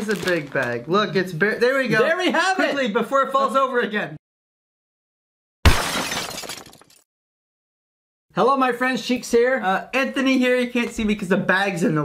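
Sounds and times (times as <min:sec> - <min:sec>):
glass shattering: 0:05.6 - 0:07.0.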